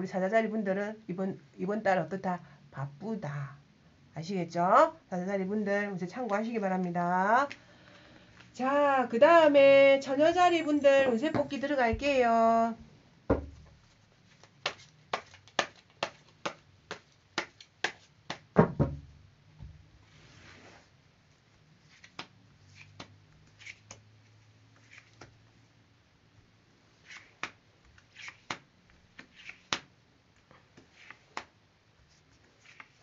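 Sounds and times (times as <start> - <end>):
cards shuffled by hand: 13.7 - 18.5, 21.8 - 25.4, 27.0 - 33.0
cards sliding on wooden table: 20.1 - 20.9, 24.8 - 25.3, 27.0 - 28.6, 29.2 - 29.9, 30.7 - 31.5, 32.1 - 33.0.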